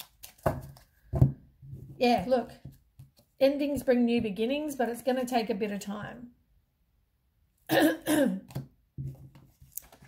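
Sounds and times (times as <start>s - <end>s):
woman clearing her throat: 7.7s - 8.5s.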